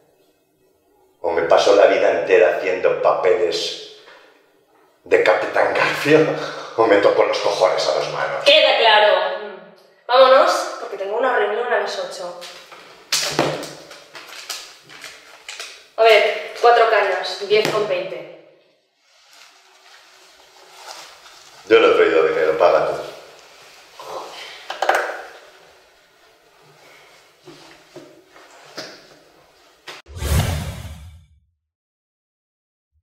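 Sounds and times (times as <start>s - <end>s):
paper handling clicks and rustles: 12.4s - 15.8s
whoosh with deep rumble: 30.1s - 31.3s.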